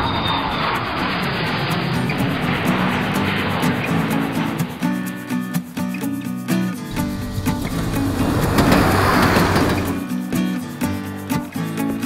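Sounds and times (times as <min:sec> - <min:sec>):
train rumbling in motion: 0:00.0 - 0:03.8, 0:06.9 - 0:10.3.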